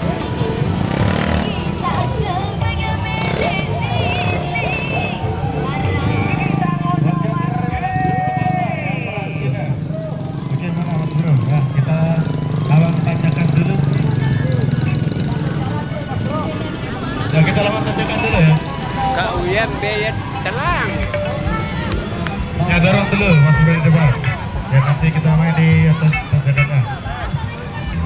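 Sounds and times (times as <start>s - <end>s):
many people talking: 0.0s - 28.0s
music playing: 0.0s - 28.0s.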